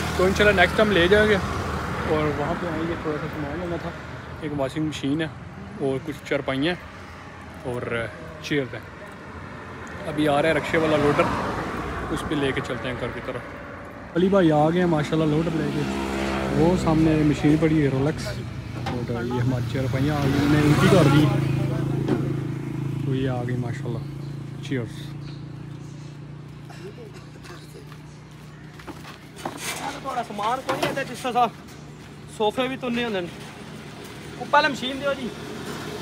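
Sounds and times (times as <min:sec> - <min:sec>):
men talking: 0:00.0 - 0:35.6
road noise: 0:00.0 - 0:36.0.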